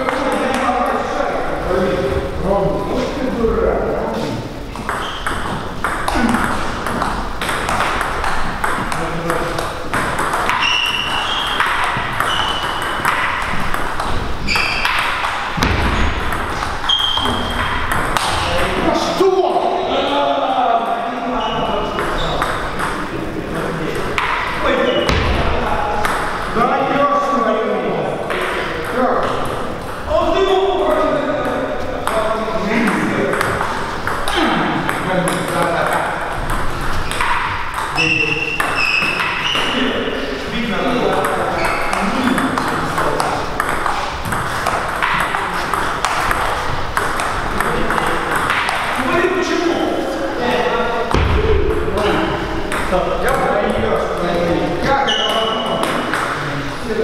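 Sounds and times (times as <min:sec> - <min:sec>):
table tennis ball clicking: 0:04.8 - 0:18.4, 0:33.3 - 0:39.4.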